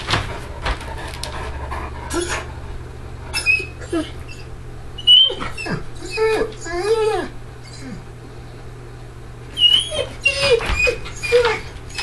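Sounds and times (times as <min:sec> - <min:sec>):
dog panting: 0:00.0 - 0:02.6
dog whimpering: 0:02.0 - 0:02.6, 0:03.3 - 0:08.1, 0:09.5 - 0:12.0.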